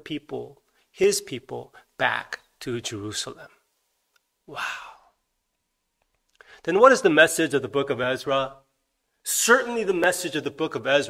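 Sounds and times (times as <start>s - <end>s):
man saying wow: 4.5s - 5.1s.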